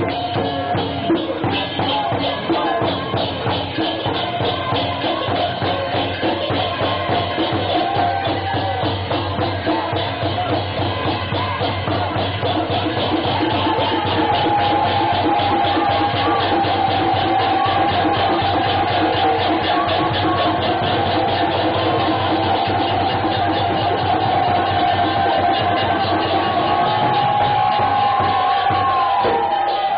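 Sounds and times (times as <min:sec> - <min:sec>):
fast percussion beat: 0:00.0 - 0:29.9
group chanting: 0:00.0 - 0:29.9.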